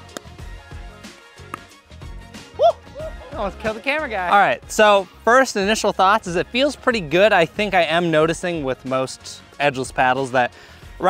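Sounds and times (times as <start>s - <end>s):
background music: 0.0s - 11.0s
paddle hitting ball pops: 0.1s - 0.4s, 1.4s - 1.8s.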